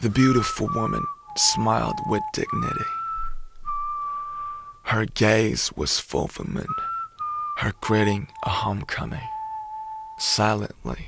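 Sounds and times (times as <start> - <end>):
person speaking: 0.0 - 3.0, 7.6 - 9.4
high steady whistle-like tone: 0.0 - 4.9, 6.4 - 11.0.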